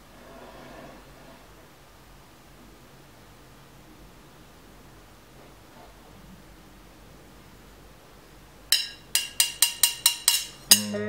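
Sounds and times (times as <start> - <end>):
sharp metallic taps: 8.7 - 11.0.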